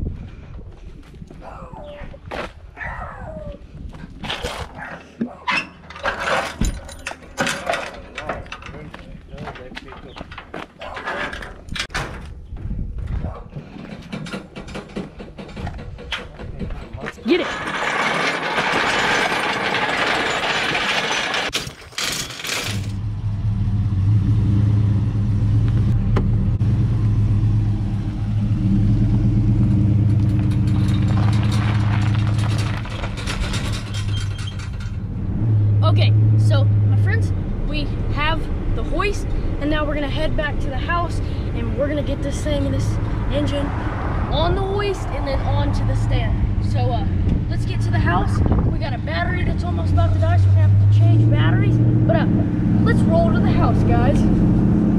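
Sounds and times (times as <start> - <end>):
metal clanks and knocks: 4.4 - 12.4, 13.5 - 23.0, 29.7 - 35.1
truck engine running: 22.9 - 34.1.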